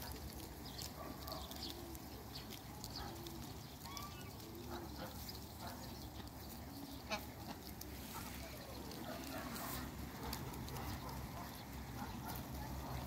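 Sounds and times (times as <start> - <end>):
geese and ducks calling softly: 0.0 - 13.0.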